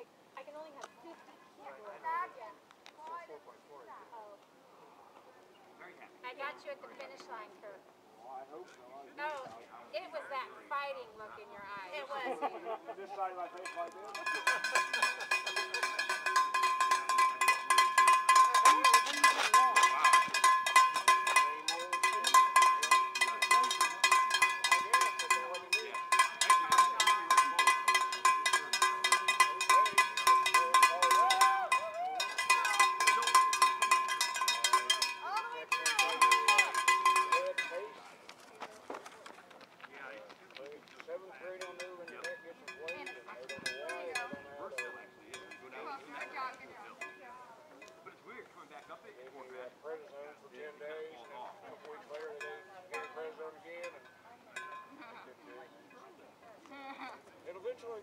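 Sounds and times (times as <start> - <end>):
cowbell rung rapidly: 13.3 - 38.0, 41.4 - 47.9, 52.2 - 55.3.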